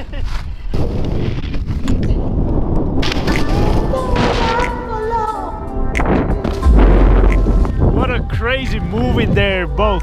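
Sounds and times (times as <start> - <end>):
wind rumbling on microphone: 0.5 - 5.0, 5.9 - 9.8.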